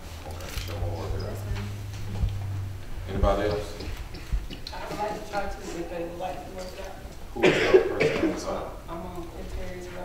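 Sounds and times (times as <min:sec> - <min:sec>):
person coughing: 0:07.4 - 0:08.5.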